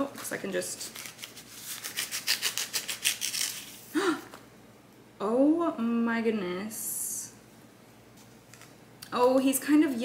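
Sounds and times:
paper wrapping rustling: 0.2 - 3.8
person gasping: 3.9 - 4.3.

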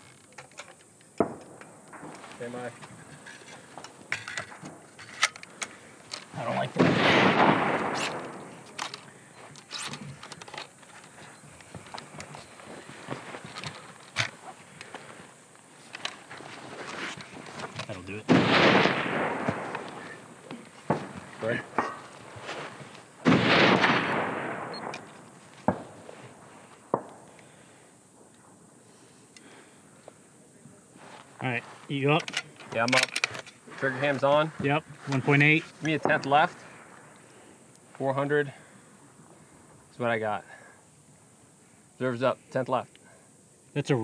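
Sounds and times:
rifle shots with echo: 1.2 - 2.6, 6.4 - 8.7, 18.3 - 22.0, 23.2 - 26.1, 26.9 - 27.4
gear clicking and rustling: 8.0 - 18.2, 32.0 - 36.0.

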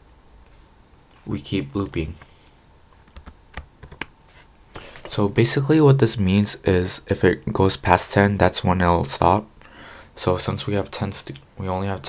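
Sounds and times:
computer keyboard key clicks: 3.1 - 4.1.

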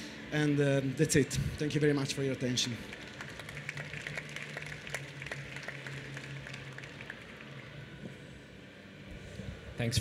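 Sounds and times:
audience applauding: 2.8 - 7.8.

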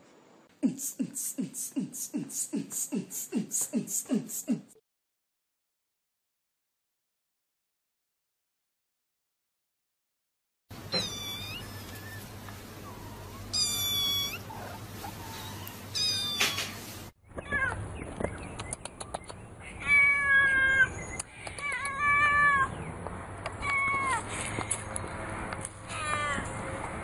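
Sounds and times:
cats meowing: 10.9 - 16.8, 19.7 - 22.8, 23.5 - 24.5, 25.9 - 26.6.

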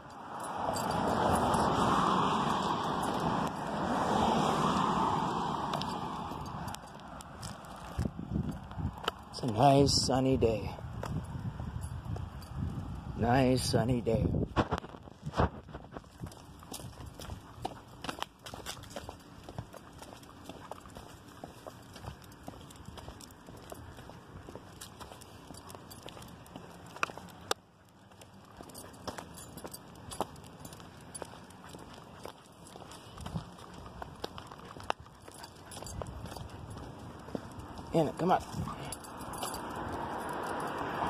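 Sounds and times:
footsteps on concrete sidewalk: 0.0 - 41.0.

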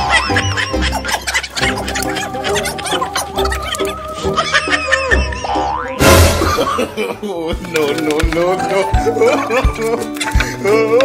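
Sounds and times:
background music: 0.0 - 11.0
cartoon pitch slides: 5.2 - 6.4.

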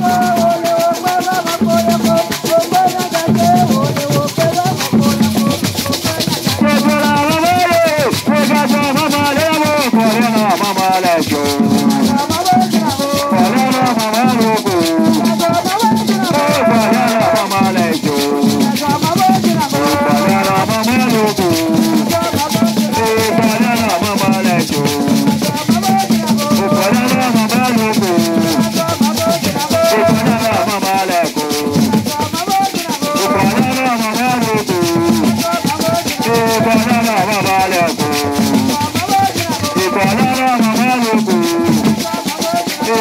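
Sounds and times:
gourd rattles shaken: 0.0 - 43.0
group singing: 0.0 - 43.0
hand drums: 0.0 - 43.0
struck bell: 0.0 - 43.0.

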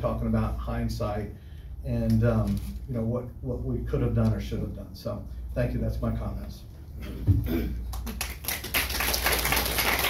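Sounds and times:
audience applauding: 7.9 - 10.0.

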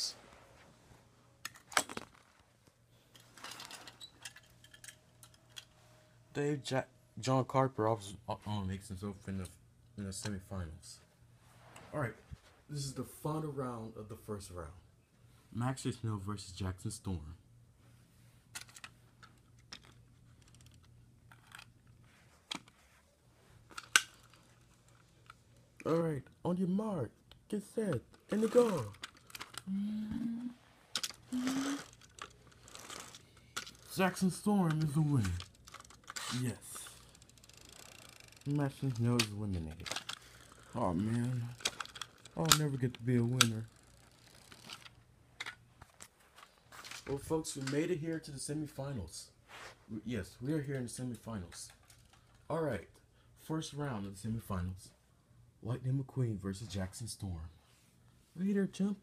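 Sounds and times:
faint steady hum: 0.0 - 59.0
toy cars clicking and rustling: 3.1 - 5.8, 18.5 - 22.8, 23.7 - 26.0, 27.9 - 29.7, 30.9 - 46.0, 51.5 - 52.5.

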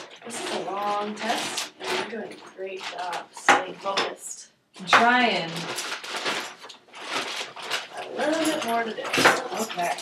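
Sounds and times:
rustling: 5.5 - 10.0
small objects clattering on table: 5.5 - 10.0.

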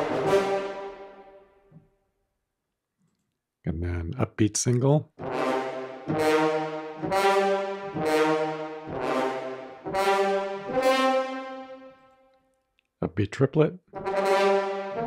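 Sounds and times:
french horn ensemble notes: 0.0 - 1.4, 5.2 - 12.1, 14.0 - 15.0.

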